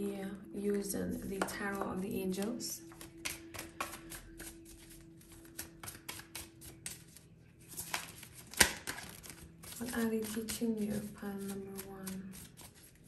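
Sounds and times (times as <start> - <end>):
cards being shuffled: 2.4 - 13.0.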